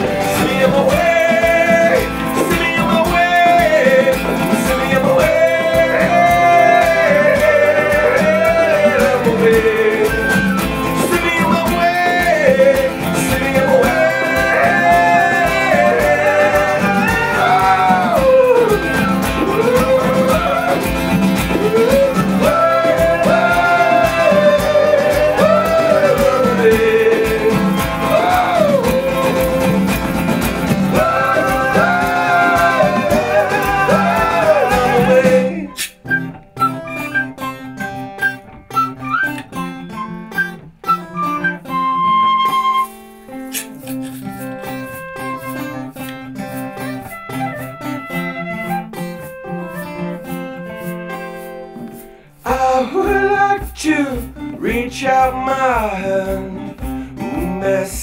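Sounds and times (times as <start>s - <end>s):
shaker: 0.0s - 35.9s, 43.5s - 58.0s
wordless vocals: 0.0s - 36.3s, 49.1s - 58.0s
hand drums: 0.0s - 40.0s, 43.5s - 58.0s
high whistle notes: 0.0s - 52.4s
acoustic guitar: 0.0s - 58.0s.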